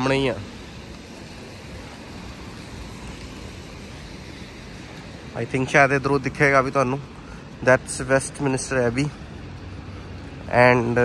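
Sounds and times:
traffic on wet roads: 0.0 - 11.0.

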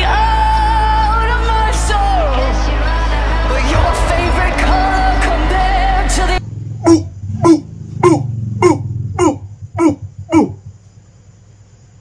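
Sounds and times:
music: 0.0 - 6.4
man crying out: 6.8 - 10.6.

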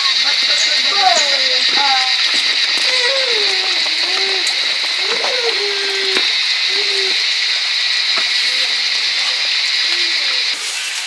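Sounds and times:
low sliding calls: 0.0 - 11.0
steady high hiss: 0.0 - 11.0.

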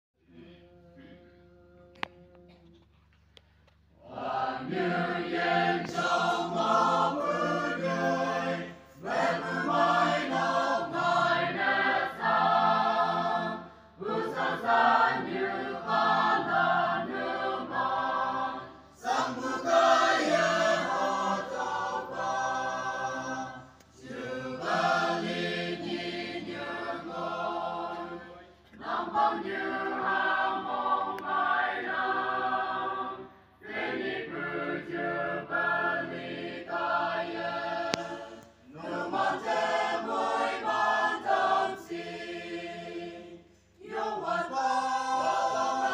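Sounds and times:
choir singing: 4.0 - 45.9.

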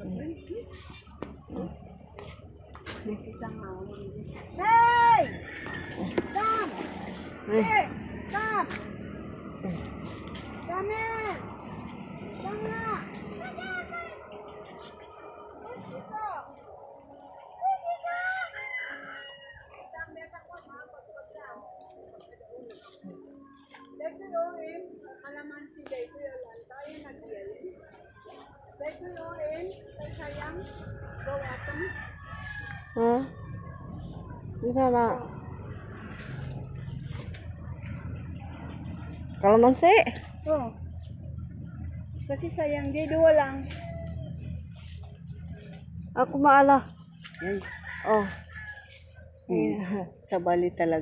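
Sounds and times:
rooster crowing: 5.0 - 7.0, 18.2 - 20.1, 30.7 - 34.3, 43.0 - 44.7, 47.2 - 49.2.

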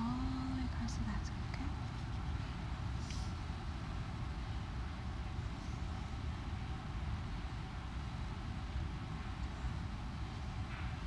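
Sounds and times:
faint hiss: 0.0 - 11.0
steady low rumble: 0.0 - 11.0
soft rustle: 1.3 - 3.5.

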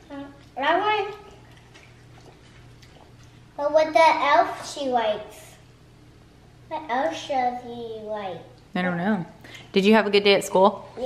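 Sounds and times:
faint steady hum: 0.0 - 11.0
woman speaking: 8.7 - 11.0.

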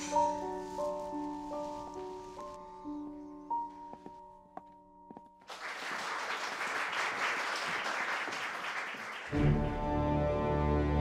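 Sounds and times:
crowd applauding: 5.5 - 10.1
brass-led orchestral music: 9.3 - 11.0.

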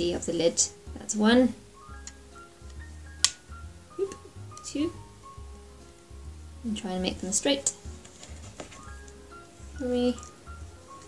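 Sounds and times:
quiet background music: 0.0 - 11.0
rubber band snap: 2.0 - 4.7.

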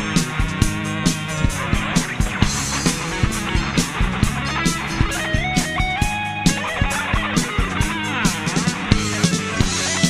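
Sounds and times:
bass guitar: 0.0 - 10.0
drums: 0.0 - 10.0
electric lead guitar melody: 0.0 - 10.0.

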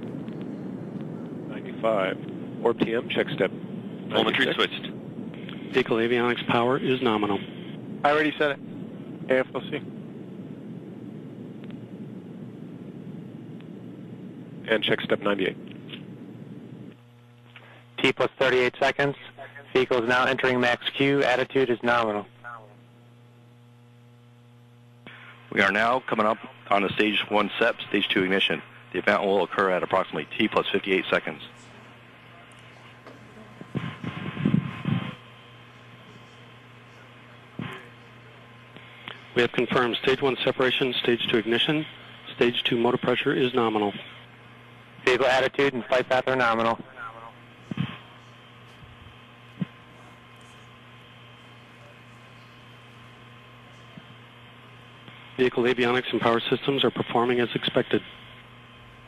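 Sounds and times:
low rushing noise: 0.0 - 17.3
radio hiss and hum: 0.0 - 59.0
faint radio voice chatter: 17.6 - 22.9, 25.1 - 44.4, 45.0 - 48.8, 49.4 - 58.4.

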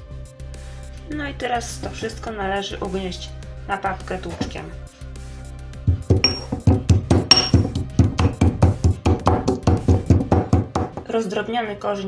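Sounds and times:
stone pestle pounding in mortar: 5.8 - 11.1.

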